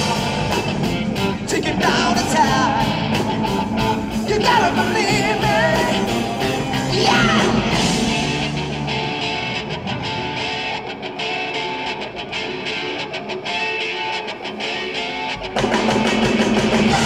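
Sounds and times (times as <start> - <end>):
blues-rock band playing: 0.0 - 17.0
electric guitar lines: 0.0 - 17.0.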